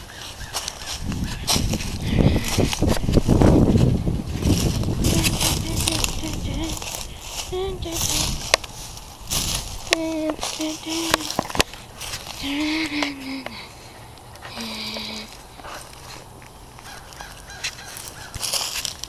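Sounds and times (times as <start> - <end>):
twigs snapping: 0.0 - 3.2, 8.4 - 12.4
footsteps crunching dry leaves: 0.0 - 19.0.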